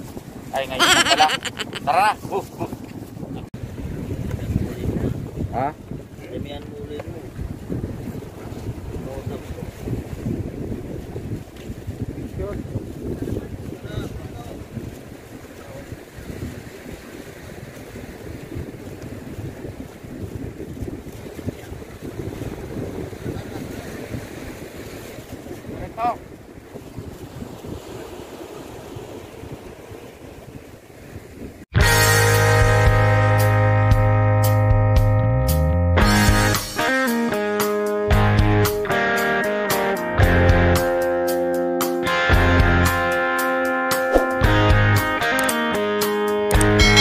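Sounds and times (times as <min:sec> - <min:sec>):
wind buffeting microphone: 0:00.0 - 0:00.8, 0:01.8 - 0:31.7
sea waves on rocks: 0:07.2 - 0:31.6.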